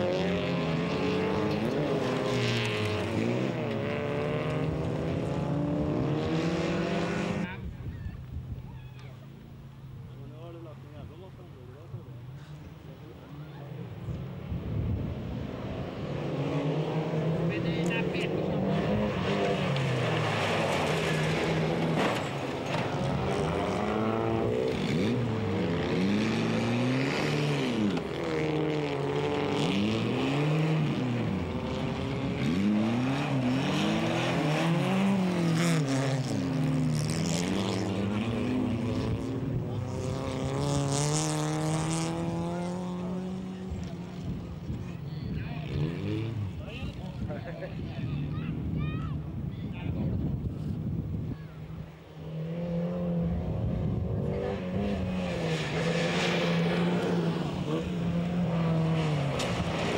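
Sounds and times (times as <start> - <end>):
race car engines at full throttle: 0.0 - 59.9.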